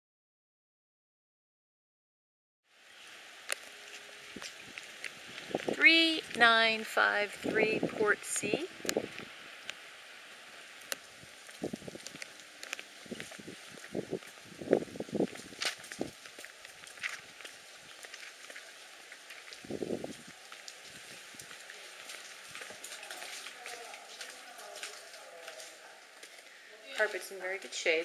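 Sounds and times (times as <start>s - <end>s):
faint outdoor background: 2.7s - 28.0s
faint steady hiss: 2.7s - 28.0s
footsteps on brick walkway: 3.4s - 28.0s.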